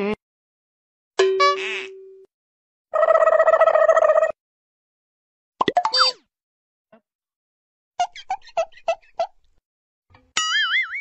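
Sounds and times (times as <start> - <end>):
cartoon horn toots: 1.4 - 2.0.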